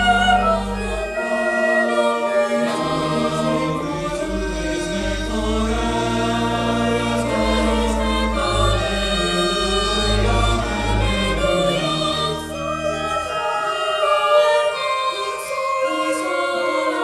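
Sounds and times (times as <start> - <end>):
mixed youth choir singing: 0.0 - 17.0.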